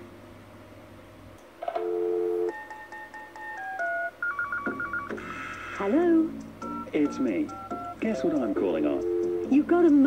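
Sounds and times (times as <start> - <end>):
two-note dial tone: 1.7 - 2.7, 6.7 - 9.6
telephone keypad tones: 1.7 - 5.2, 6.6 - 9.6.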